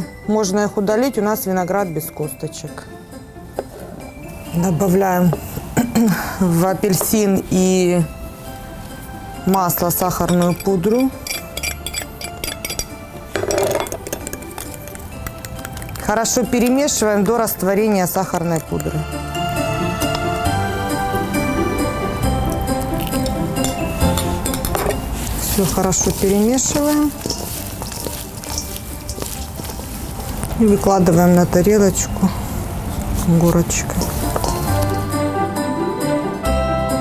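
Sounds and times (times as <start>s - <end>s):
background music: 0.0s - 37.0s
metal fork clinking against bowl: 9.5s - 17.4s, 23.0s - 25.0s, 25.8s - 29.8s, 33.9s - 35.1s
salad tossed in steel bowl: 22.9s - 30.6s, 33.8s - 35.1s.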